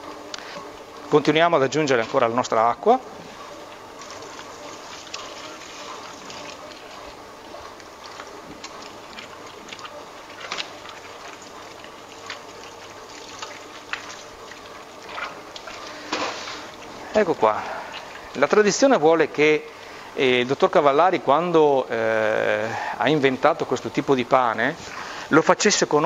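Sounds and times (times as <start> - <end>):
dough mixer running: 0.0 - 25.3
water pouring into dough: 1.2 - 21.2.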